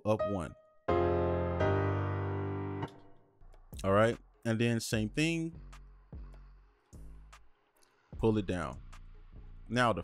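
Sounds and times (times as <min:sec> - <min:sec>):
synthesized three-note chord: 0:00.9 - 0:03.0.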